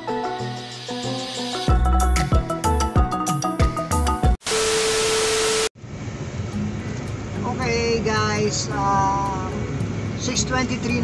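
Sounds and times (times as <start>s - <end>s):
tv static hiss with tone: 4.4s - 5.7s.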